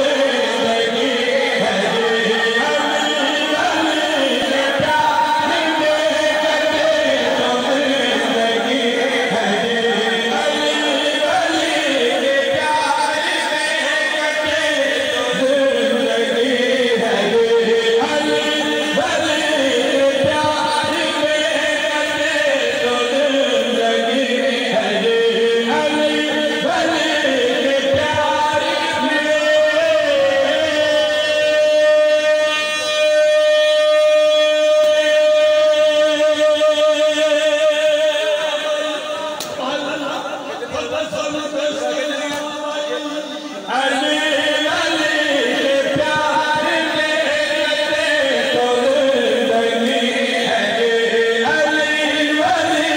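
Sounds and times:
person singing over loudspeaker: 0.0s - 52.9s.

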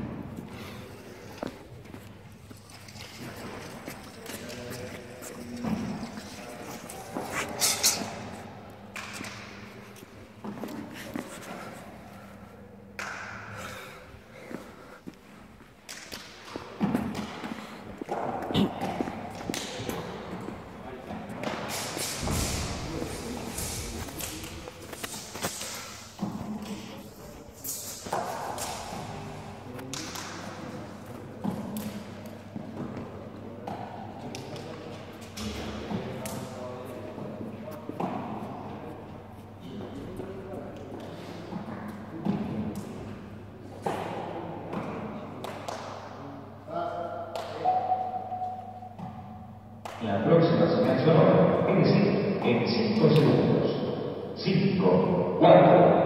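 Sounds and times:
indistinct voices in hall: 0.0s - 56.0s.

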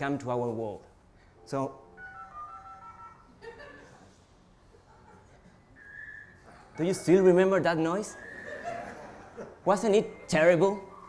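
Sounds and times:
steady high modem tone: 1.4s - 3.9s, 5.6s - 11.0s.

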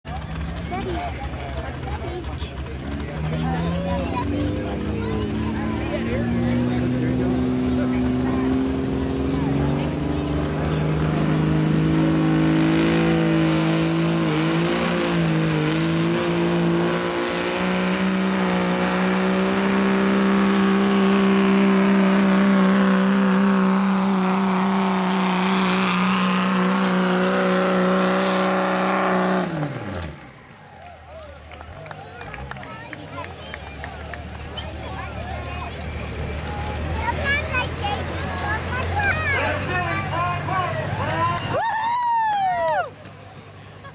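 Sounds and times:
diesel truck engine at full throttle: 0.0s - 43.9s.

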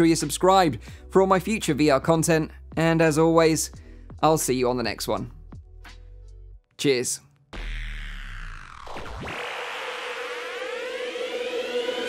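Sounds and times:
electronic music: 7.6s - 12.0s
synthesizer riser sweeps: 7.6s - 12.0s.

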